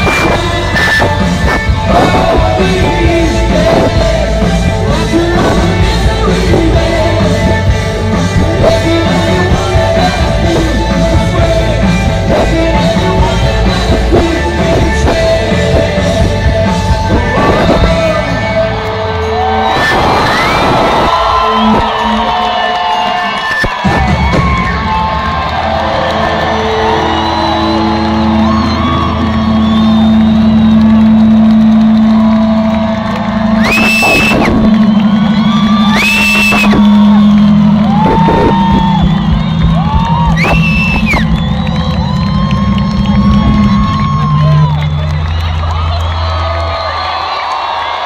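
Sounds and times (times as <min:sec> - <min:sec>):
crowd cheering and whooping: 0:00.0 - 0:48.0
live rock band: 0:00.0 - 0:48.0
high screams: 0:19.3 - 0:30.9, 0:32.2 - 0:48.0.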